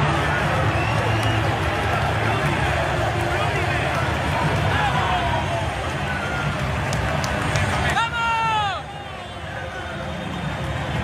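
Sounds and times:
sharp claps: 0:00.0 - 0:08.7
stadium crowd din: 0:00.0 - 0:11.0.

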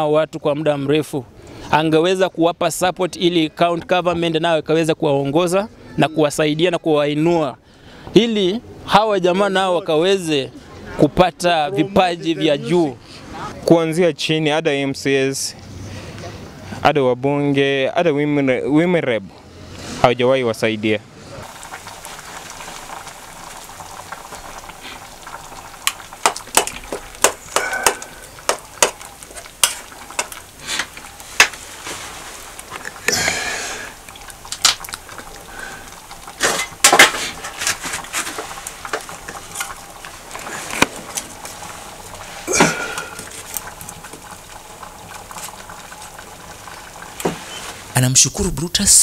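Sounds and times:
liquid boiling in a metal pot: 0:21.4 - 0:48.0
pan of food simmering: 0:21.4 - 0:48.0
wood fire crackling and popping: 0:21.4 - 0:48.8.

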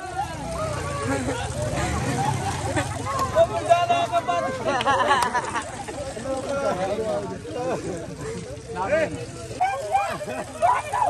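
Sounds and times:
low engine rumble: 0:00.0 - 0:11.0
people talking: 0:00.0 - 0:11.0.

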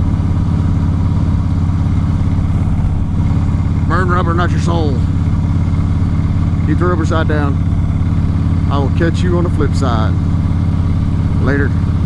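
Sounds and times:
motorcycle engine cruising: 0:00.0 - 0:12.0.

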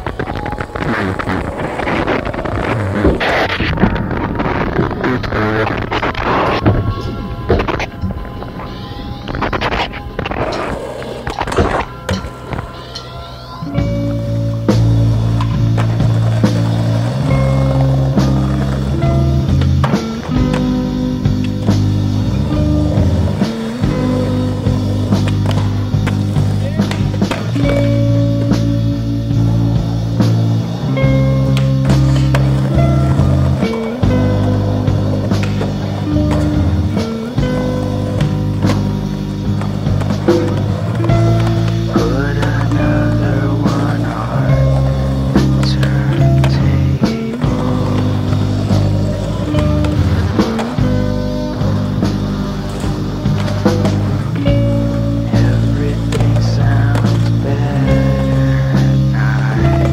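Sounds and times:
skateboard clacks: 0:00.0 - 0:59.9
skateboards rolling on concrete: 0:00.0 - 0:59.9
music with sustained chords: 0:06.0 - 0:59.9.

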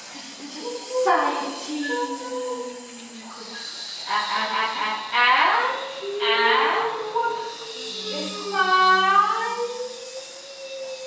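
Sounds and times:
choir holding sustained notes: 0:00.5 - 0:09.9.

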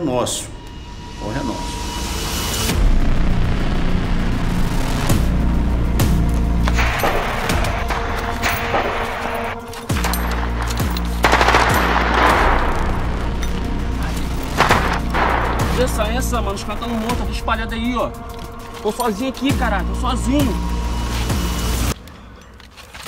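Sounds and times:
background music with deep bass: 0:00.0 - 0:22.0
automatic rifle gunfire: 0:06.7 - 0:13.4, 0:14.5 - 0:15.9.

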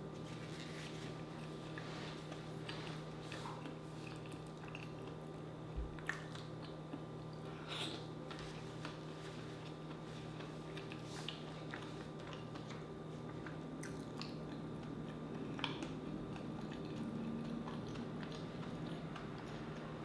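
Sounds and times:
low electrical hum: 0:00.0 - 0:20.0
person chewing wetly: 0:01.2 - 0:20.0.

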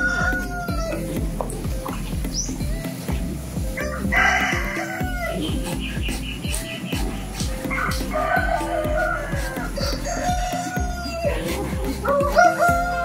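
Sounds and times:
roosters crowing: 0:00.0 - 0:01.3, 0:03.6 - 0:13.0
background music: 0:00.0 - 0:13.0.

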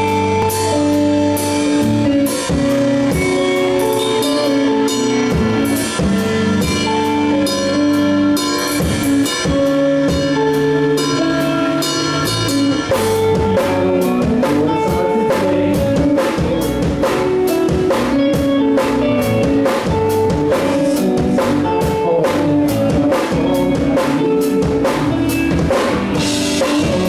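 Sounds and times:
distorted electric guitars: 0:00.0 - 0:27.0
drum kit beat: 0:00.0 - 0:27.0.

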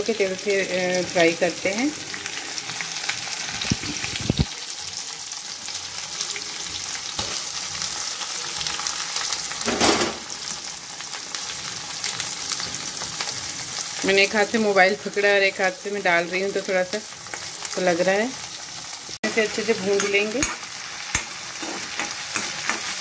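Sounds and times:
onions sizzling in oil: 0:00.0 - 0:23.0.

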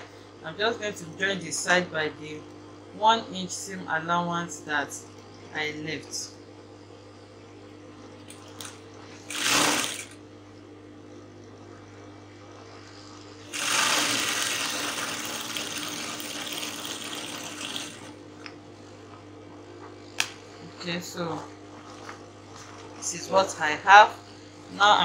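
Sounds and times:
sewing machine motor humming: 0:09.2 - 0:10.2, 0:12.9 - 0:18.2
sewing machine stitching: 0:13.5 - 0:18.1.

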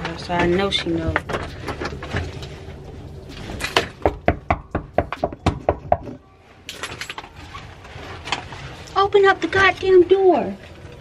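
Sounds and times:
rapid knocking on a door: 0:04.0 - 0:06.2.

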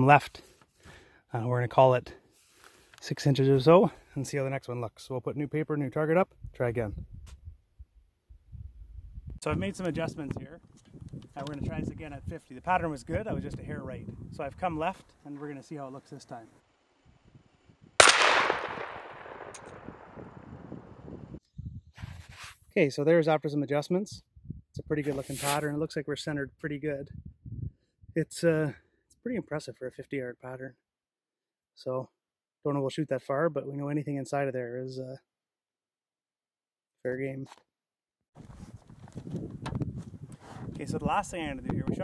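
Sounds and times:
outdoor background noise: 0:09.2 - 0:21.4
shotgun shot with echo: 0:18.0 - 0:20.5.

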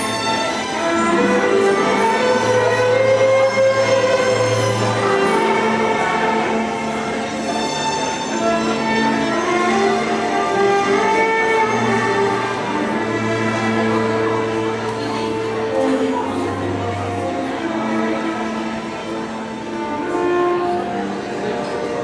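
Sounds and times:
amplified violin long bowed notes: 0:00.0 - 0:22.0.

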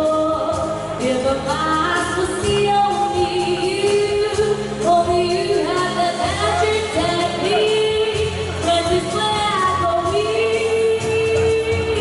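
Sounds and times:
live band with keyboards and drums: 0:00.0 - 0:12.0
woman singing into a microphone: 0:00.0 - 0:12.0.

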